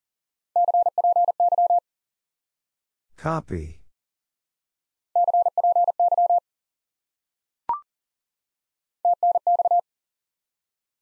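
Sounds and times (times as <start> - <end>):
morse code beeps: 0.6 - 1.8, 5.2 - 6.4, 9.1 - 9.8.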